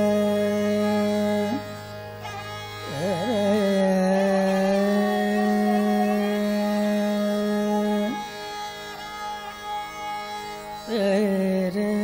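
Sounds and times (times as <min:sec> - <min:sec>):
person singing classical vocal: 0:00.0 - 0:08.6, 0:10.7 - 0:12.0
harmonium: 0:00.0 - 0:12.0
sarangi: 0:00.0 - 0:12.0
tanpura drone: 0:00.0 - 0:12.0.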